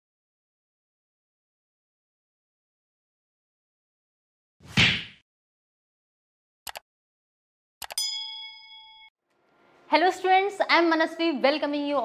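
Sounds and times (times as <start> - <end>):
bright bell ding: 8.0 - 9.1.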